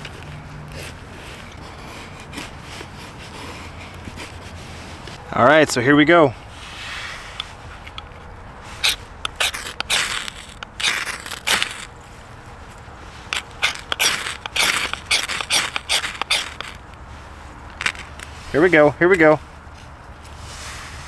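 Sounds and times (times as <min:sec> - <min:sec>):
knife scraping ferrocerium rod: 0:06.6 - 0:12.0, 0:13.1 - 0:16.8.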